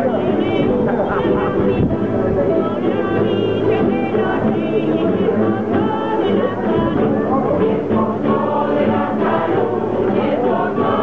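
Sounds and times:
mixed choir singing: 0:00.0 - 0:11.0
plucked string ensemble: 0:00.0 - 0:11.0.

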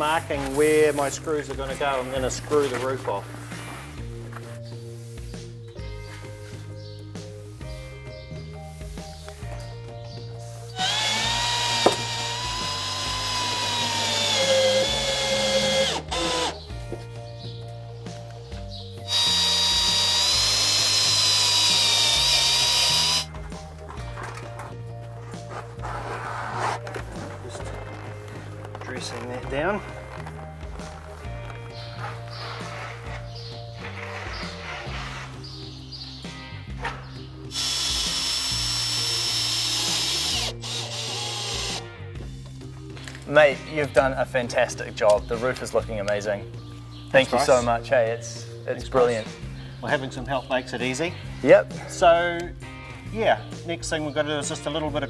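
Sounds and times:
background music: 0:00.0 - 0:55.0
cordless drill whining: 0:10.7 - 0:16.7, 0:19.1 - 0:23.3, 0:37.5 - 0:41.8.

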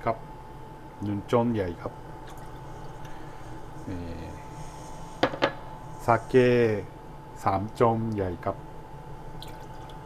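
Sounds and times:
person speaking: 0:03.8 - 0:04.8, 0:05.9 - 0:08.6.

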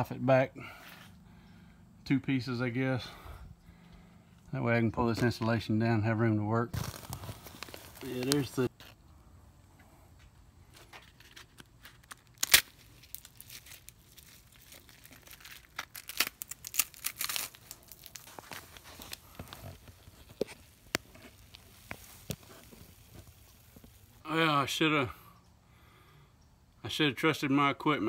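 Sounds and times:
insulation being torn by hand: 0:11.1 - 0:24.2.

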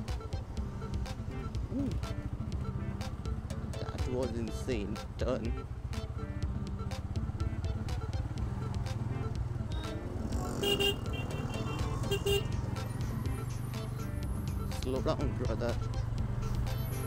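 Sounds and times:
background music: 0:00.0 - 0:17.0
motorcycle engine running: 0:00.0 - 0:17.0
vehicle horn toots: 0:10.5 - 0:12.6.

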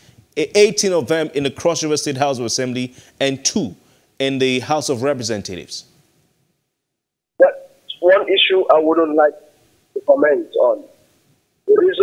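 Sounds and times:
man's voice on telephone line: 0:07.4 - 0:10.9, 0:11.7 - 0:12.0.

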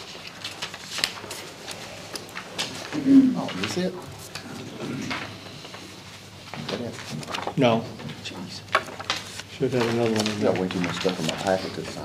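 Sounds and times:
paper sheets rustling: 0:00.0 - 0:04.4, 0:05.1 - 0:12.0.

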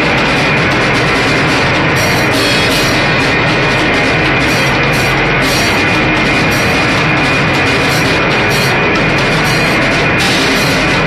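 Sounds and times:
drum kit and cymbals: 0:00.0 - 0:11.0.

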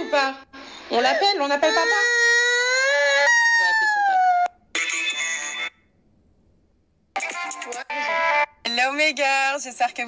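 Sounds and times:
toddler wailing cry: 0:01.4 - 0:04.5.

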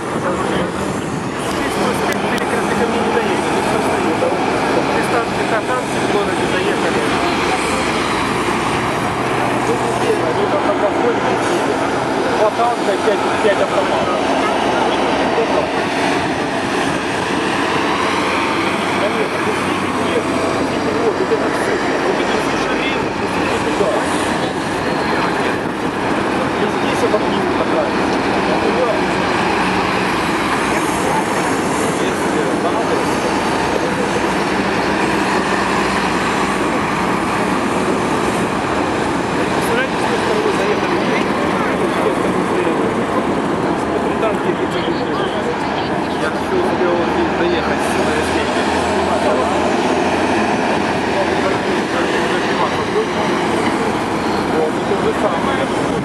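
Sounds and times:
diesel truck engines: 0:00.0 - 0:56.0
tyres on road: 0:00.0 - 0:56.0
voices: 0:00.0 - 0:56.0.

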